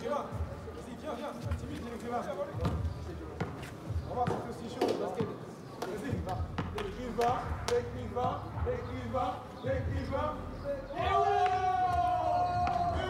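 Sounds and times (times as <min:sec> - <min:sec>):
basketball bouncing: 0:06.2 - 0:07.6.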